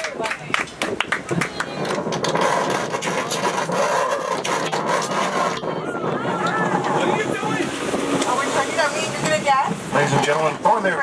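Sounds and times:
guests chattering: 0:00.0 - 0:11.0
noisy background: 0:00.0 - 0:11.0.

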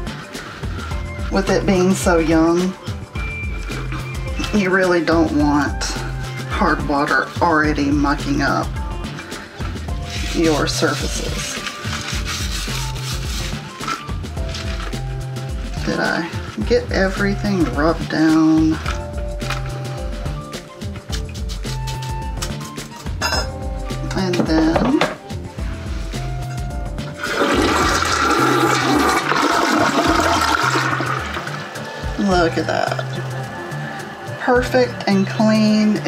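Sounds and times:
toilet brush scrubbing bowl: 0:00.0 - 0:05.9, 0:06.9 - 0:22.7, 0:25.6 - 0:36.0
background music: 0:00.0 - 0:36.0
toilet flushing: 0:27.1 - 0:32.2.

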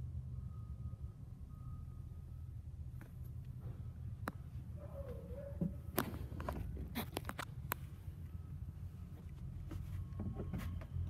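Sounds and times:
footsteps in van: 0:09.0 - 0:11.0.

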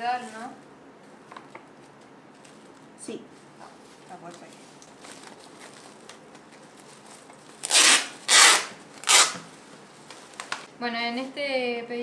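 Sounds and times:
tape ripping off roll: 0:04.8 - 0:09.6.

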